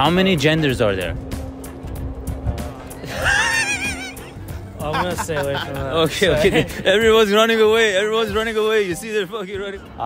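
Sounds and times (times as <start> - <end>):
low outdoor rumble: 0.0 - 8.5.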